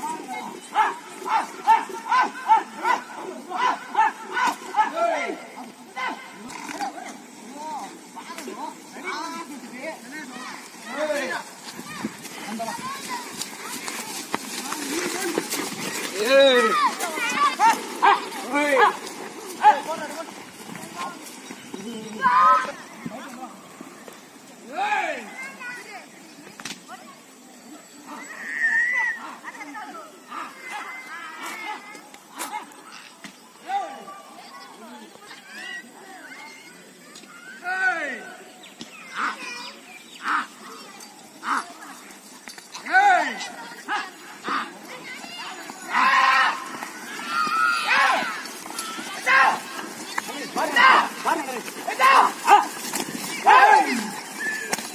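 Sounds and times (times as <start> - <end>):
men shouting drawn-out calls: 0.0 - 13.2, 14.6 - 21.2, 45.4 - 54.9.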